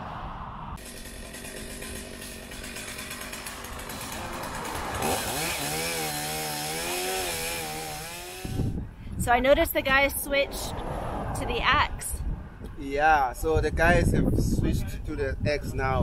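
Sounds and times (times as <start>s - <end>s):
chainsaw cutting branches: 0.8s - 8.8s.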